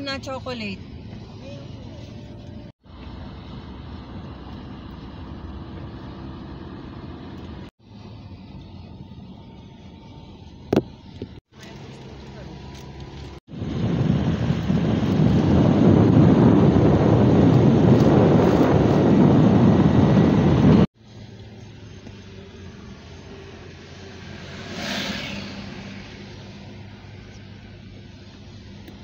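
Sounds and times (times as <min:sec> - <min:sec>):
road noise inside car: 0:00.0 - 0:29.0
wind rushing over microphone: 0:13.4 - 0:20.9.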